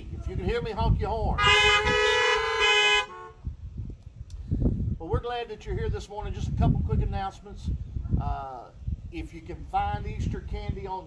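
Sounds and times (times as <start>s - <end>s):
car horns honking: 1.4s - 3.4s.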